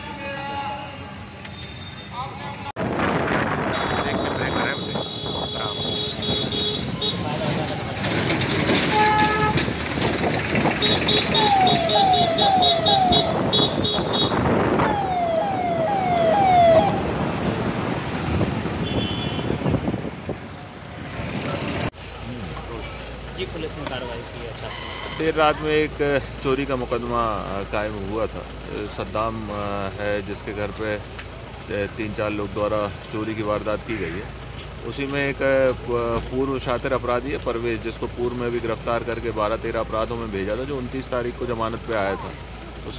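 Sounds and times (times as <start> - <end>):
street noise: 0.0 - 42.9
vehicle engines: 0.0 - 42.9
police siren whoops: 11.2 - 13.4, 14.8 - 17.0.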